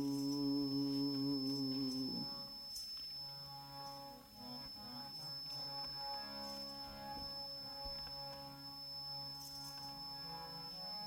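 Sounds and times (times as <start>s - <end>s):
harmonium playing chords: 0.0s - 11.0s
thin high-pitched whine: 0.0s - 11.0s.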